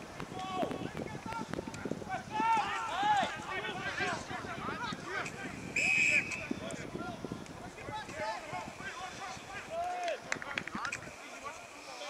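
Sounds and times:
people shouting: 0:02.1 - 0:05.5.

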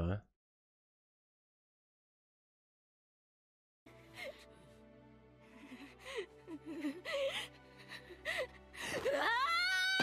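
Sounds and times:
soft background music: 0:03.9 - 0:10.0.

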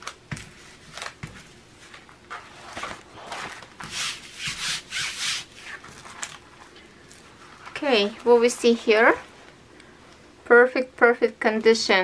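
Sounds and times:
hands rustling on plastic film: 0:00.0 - 0:09.4.

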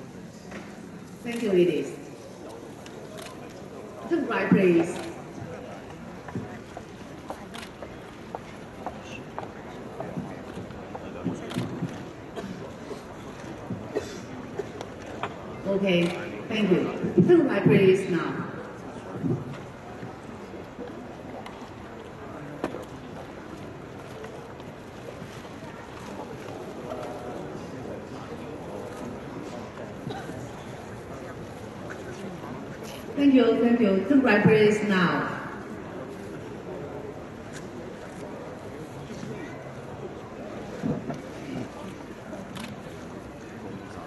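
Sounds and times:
murmur of seated audience: 0:00.0 - 0:44.0.

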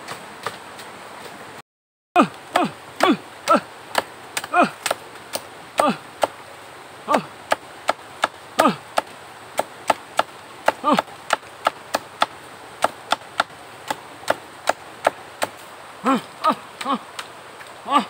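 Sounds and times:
machete chopping bamboo: 0:02.6 - 0:06.4, 0:07.5 - 0:15.6.

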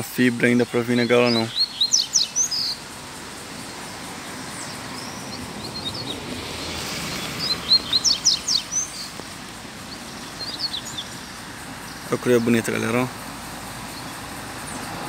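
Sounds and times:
background hiss: 0:00.0 - 0:15.0
bird singing high-pitched phrases: 0:00.4 - 0:02.8, 0:07.2 - 0:09.2, 0:09.9 - 0:12.8.

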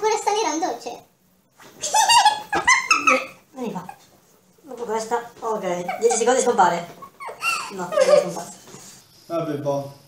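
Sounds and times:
woman's shrill squealing laugh: 0:01.8 - 0:03.4, 0:05.8 - 0:08.4.

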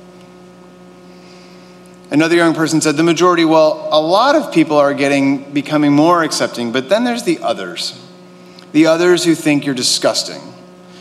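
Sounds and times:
electrical mains hum: 0:00.0 - 0:11.0.

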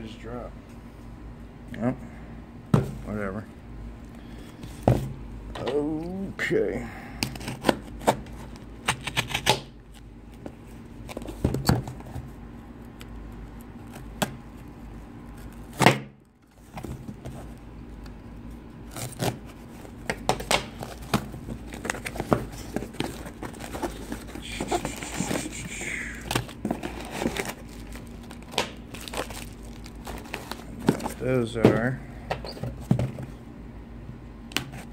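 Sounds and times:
knife slitting packing tape: 0:08.8 - 0:09.7, 0:18.9 - 0:19.4, 0:23.7 - 0:26.5
packing material crinkling: 0:18.9 - 0:25.7, 0:26.3 - 0:31.3
cardboard box scrapes and rustle: 0:20.8 - 0:25.7.

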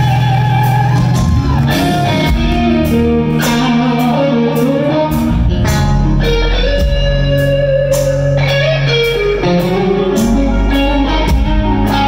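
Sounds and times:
electric guitar lead: 0:00.0 - 0:12.0.

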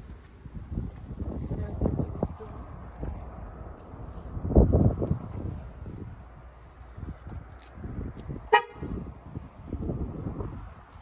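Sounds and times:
wind buffeting microphone: 0:00.0 - 0:11.0
loud honk: 0:08.5 - 0:08.9.

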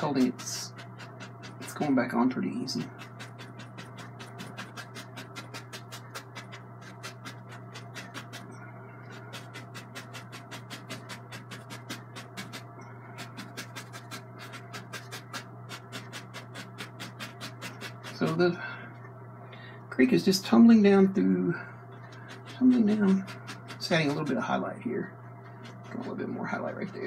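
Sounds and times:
brush dabbing paint on canvas: 0:00.0 - 0:18.5, 0:21.9 - 0:24.6, 0:25.4 - 0:27.0
steady low hum: 0:00.0 - 0:27.0.

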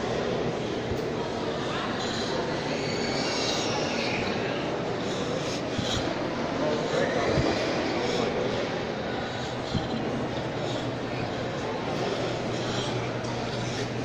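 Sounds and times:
steady rushing hum: 0:03.4 - 0:14.0.

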